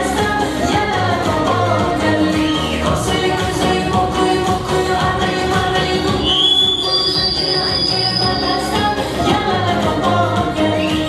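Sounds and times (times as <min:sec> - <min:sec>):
woman singing into microphone: 0:00.0 - 0:11.0
amplified band: 0:00.8 - 0:11.0.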